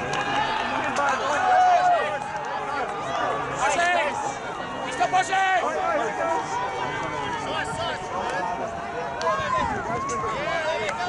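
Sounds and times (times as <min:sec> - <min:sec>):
people shouting and calling: 0:00.0 - 0:11.0.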